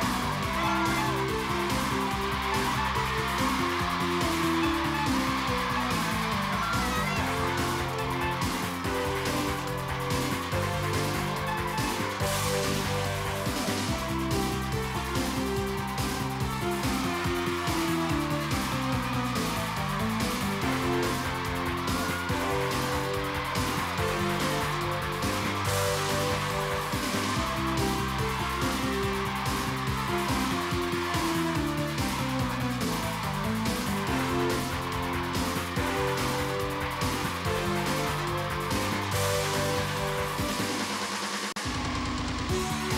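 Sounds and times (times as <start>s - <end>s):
upbeat background music: 0.0s - 42.9s.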